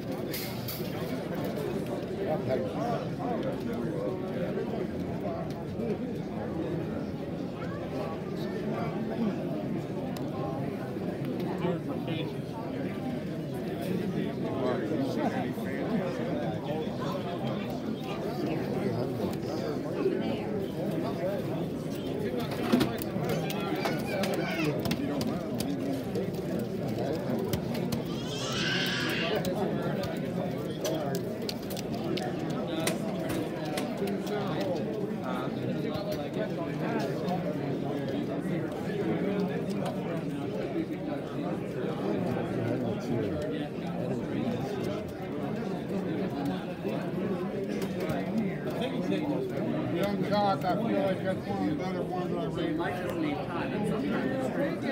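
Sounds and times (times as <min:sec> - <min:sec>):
people talking in a hall: 0:00.0 - 0:54.9.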